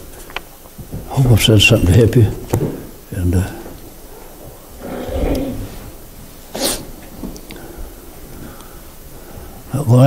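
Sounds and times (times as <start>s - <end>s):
man blowing his nose: 6.5s - 6.9s.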